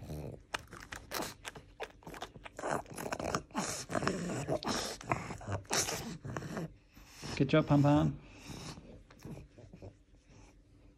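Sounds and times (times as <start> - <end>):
dog chewing and crunching: 0.0 - 6.4.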